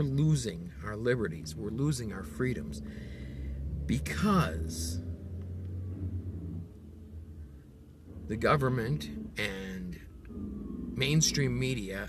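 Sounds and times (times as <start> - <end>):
vehicle engine rumble in cab: 0.0 - 12.0.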